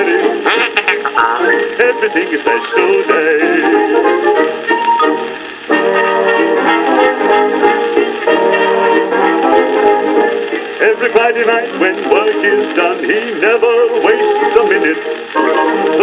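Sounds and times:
old dance-band record playing: 0.0 - 16.0
record surface ticks: 0.0 - 16.0.

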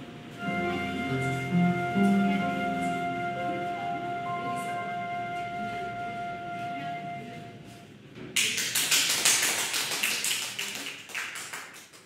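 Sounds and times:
small audience clapping: 8.2 - 12.0.

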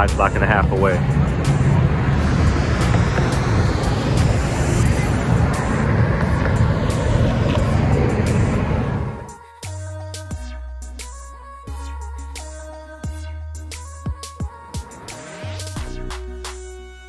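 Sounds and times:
car passing: 0.0 - 9.4
low rumble of street traffic: 0.0 - 10.0.

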